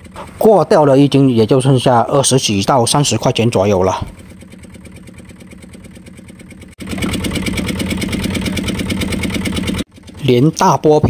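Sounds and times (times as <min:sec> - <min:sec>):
boat engine running: 0:00.0 - 0:11.0.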